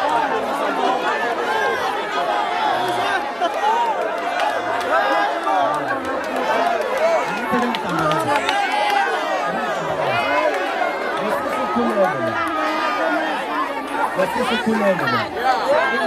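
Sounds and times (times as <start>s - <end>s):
crowd babble: 0.0s - 16.0s.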